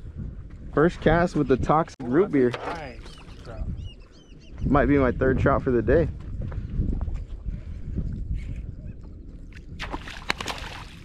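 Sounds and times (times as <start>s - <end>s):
wind on microphone: 0.0s - 11.0s
water around boat: 2.0s - 4.2s, 7.6s - 11.0s
fish splashing at surface: 9.8s - 11.0s.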